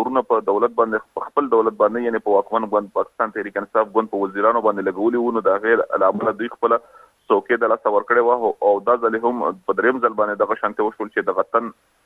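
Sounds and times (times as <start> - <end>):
man speaking over a telephone: 0.0 - 11.7.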